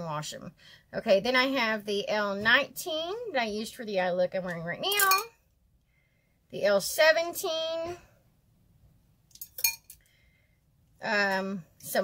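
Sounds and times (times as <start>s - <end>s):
makeup brushes clinking: 4.8s - 5.3s, 9.3s - 10.0s.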